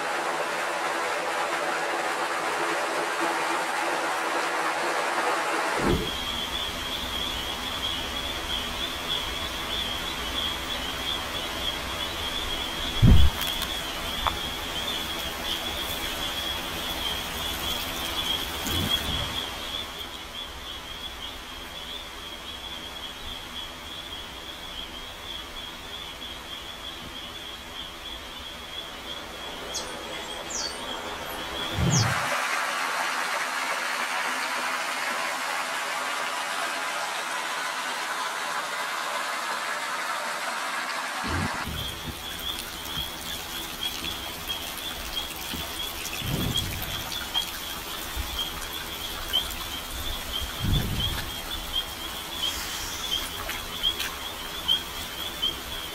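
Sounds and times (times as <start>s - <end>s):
insect chirring: 6.1s - 32.3s, 41.6s - 55.9s
fountain water splashing into pool: 40.8s - 55.9s.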